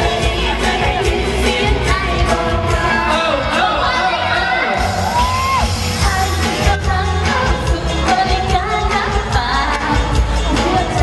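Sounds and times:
woman singing into microphone: 0:00.0 - 0:04.8, 0:05.9 - 0:11.0
band with drums and bass: 0:00.0 - 0:11.0.

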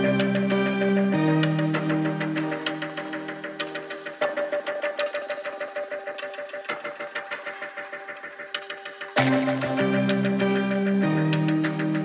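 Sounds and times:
ticking electronic percussion: 0:03.6 - 0:10.6.

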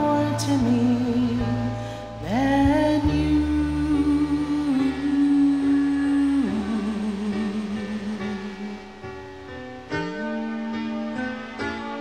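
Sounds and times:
karaoke backing track: 0:00.0 - 0:12.0
woman singing long note: 0:02.2 - 0:08.8.

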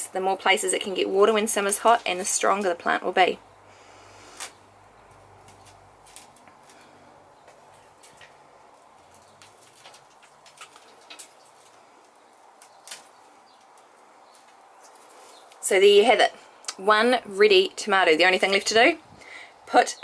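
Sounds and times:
potting mix crackling under fingers: 0:04.1 - 0:17.0.

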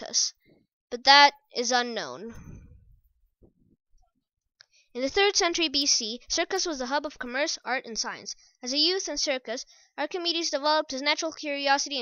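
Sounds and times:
person speaking: 0:00.0 - 0:03.0, 0:05.0 - 0:09.3.

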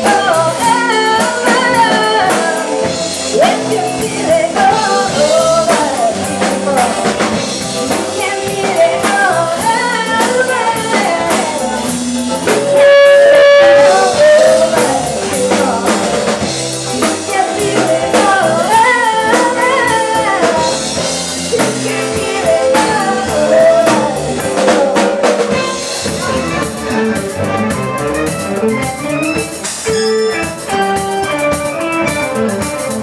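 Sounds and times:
woman singing: 0:00.0 - 0:26.5
drum kit: 0:00.0 - 0:33.0
electric guitars: 0:00.0 - 0:33.0.

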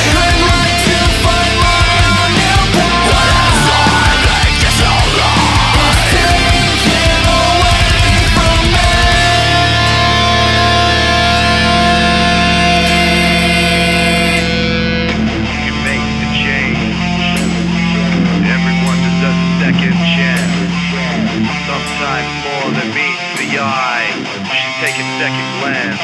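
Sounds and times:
guitar lines bending: 0:00.0 - 0:26.0
heavy metal music: 0:00.0 - 0:26.0.

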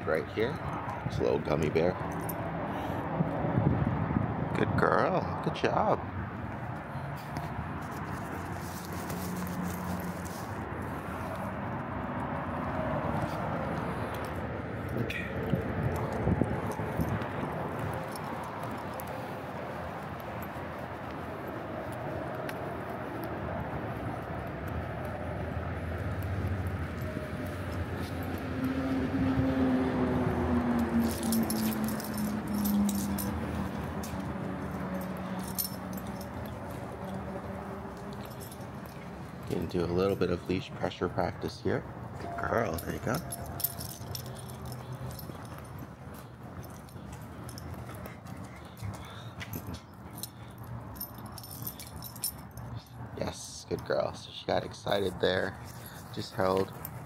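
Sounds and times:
leash and tags jingling: 0:00.0 - 0:03.0, 0:06.5 - 0:57.0
outdoor ambience: 0:00.0 - 0:57.0.

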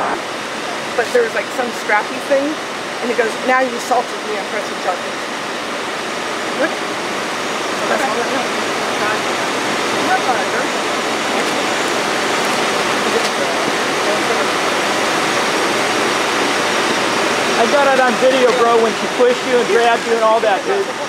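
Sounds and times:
machinery rushing noise: 0:00.0 - 0:21.0
faint voices: 0:07.7 - 0:21.0.

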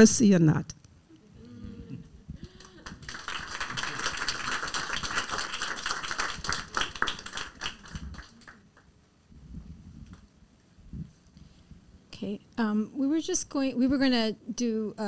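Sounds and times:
audience applauding: 0:02.4 - 0:08.9.

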